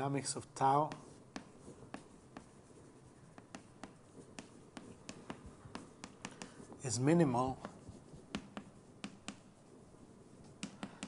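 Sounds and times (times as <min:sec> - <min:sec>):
chalk writing on board: 0:00.0 - 0:11.0.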